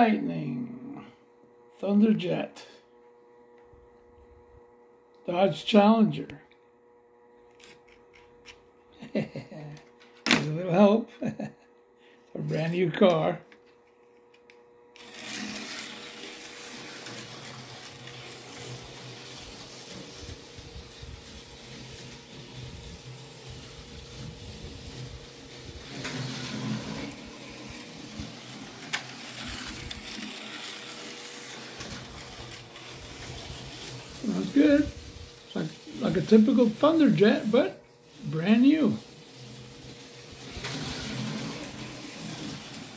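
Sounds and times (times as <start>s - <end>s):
slot car motor whir: 14.3s - 42.9s.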